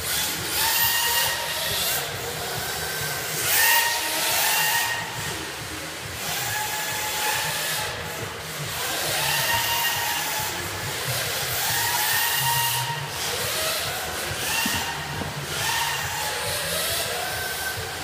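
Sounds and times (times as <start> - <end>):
electric motor whines: 0.0 - 18.0.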